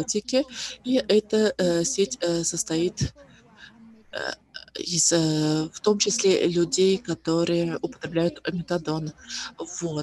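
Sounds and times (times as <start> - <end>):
person talking: 0.0 - 3.1, 4.2 - 10.0.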